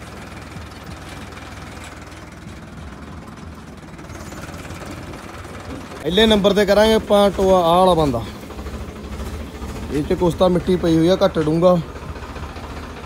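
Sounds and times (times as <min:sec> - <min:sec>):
diesel tractor engine idling: 0:00.0 - 0:13.0.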